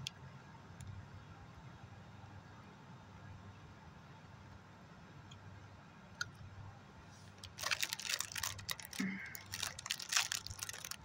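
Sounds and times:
plastic wrapper crinkling: 7.3 - 11.0.

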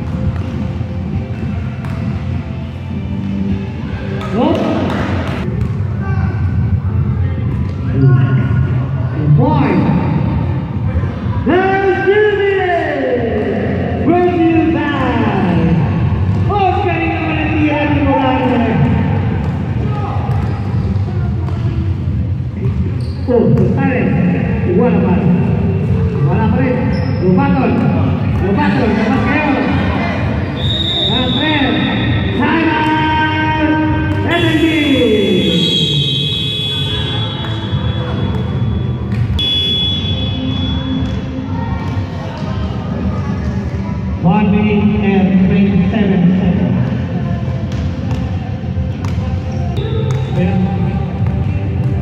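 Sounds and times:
basketball bouncing in hall: 0.0 - 11.5, 13.0 - 44.1, 46.6 - 52.0
players' voices and shouts: 23.2 - 38.8.

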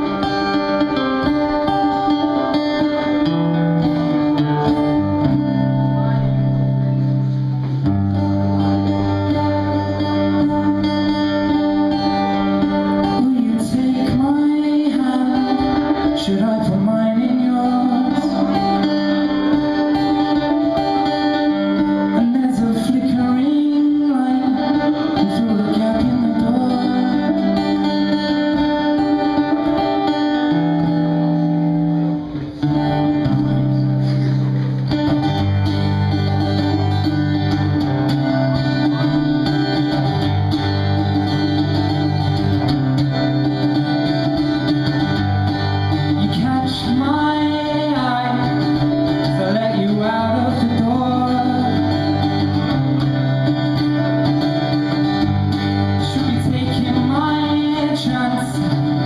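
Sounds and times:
strummed acoustic guitar: 0.0 - 59.0
man singing: 12.8 - 21.2, 22.0 - 29.5, 46.1 - 52.5, 56.0 - 59.0.

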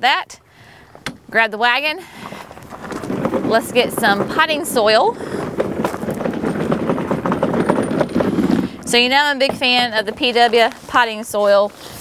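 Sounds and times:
wagon wheels crunching on gravel: 0.9 - 12.0
footsteps on gravel: 2.0 - 12.0.

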